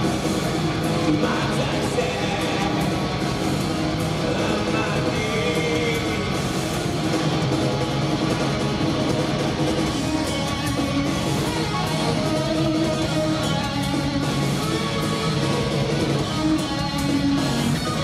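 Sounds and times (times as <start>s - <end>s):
rock band playing live: 0.0s - 18.0s.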